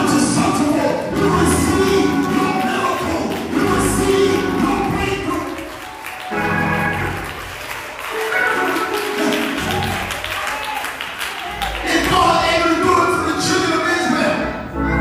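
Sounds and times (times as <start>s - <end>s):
gospel singing with instruments: 0.0s - 7.1s
hand clapping: 0.0s - 12.6s.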